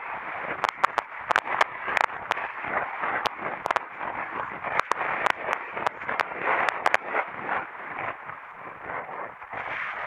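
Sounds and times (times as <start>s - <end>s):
sharp crackling clicks: 0.0s - 10.0s
wind buffeting microphone: 0.0s - 10.0s.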